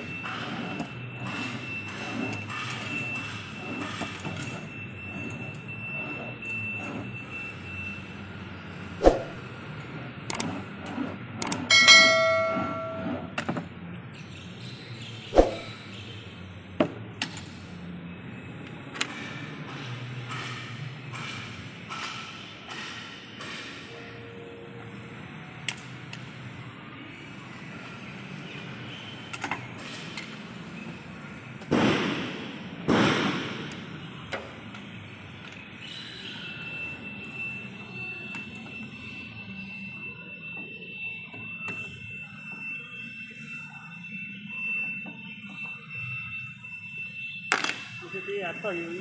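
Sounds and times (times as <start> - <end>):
steady high-pitched tone: 11.7 - 13.4.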